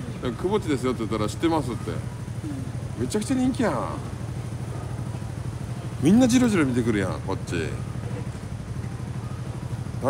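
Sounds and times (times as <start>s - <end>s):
street traffic engine drone: 0.0s - 10.0s.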